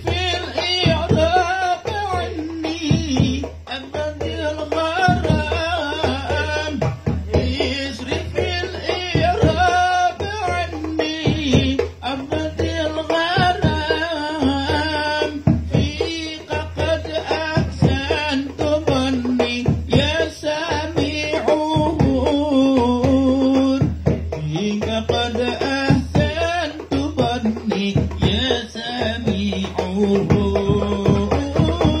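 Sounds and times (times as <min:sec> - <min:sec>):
hand-drum strokes: 0:00.0 - 0:32.0
man singing into a microphone: 0:00.0 - 0:32.0.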